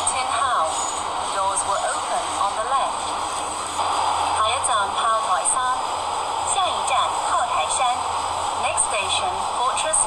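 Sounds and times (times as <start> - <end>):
automated announcement voice: 0.0 - 3.2, 3.8 - 5.8, 6.4 - 10.0
train running noise and hum: 0.0 - 10.0.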